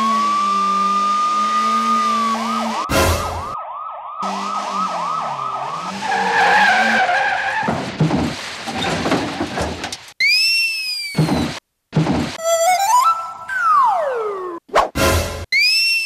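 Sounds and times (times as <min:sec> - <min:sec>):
police siren: 0:00.0 - 0:07.2, 0:12.4 - 0:14.6.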